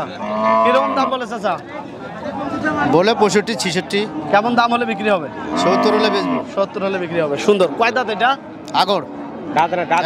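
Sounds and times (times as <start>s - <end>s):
men talking: 0.0s - 10.0s
cow mooing: 0.1s - 1.2s, 5.4s - 6.5s.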